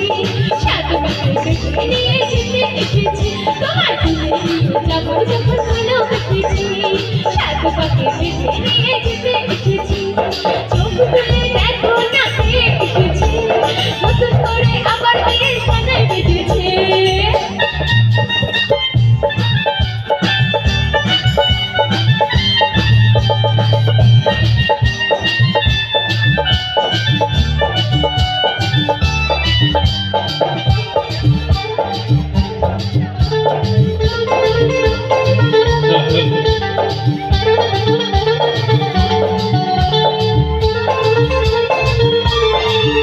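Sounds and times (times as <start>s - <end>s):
bass guitar: 0.0s - 43.0s
drums: 0.0s - 43.0s
live band playing: 0.0s - 43.0s
organ-like keyboard lead: 15.8s - 43.0s.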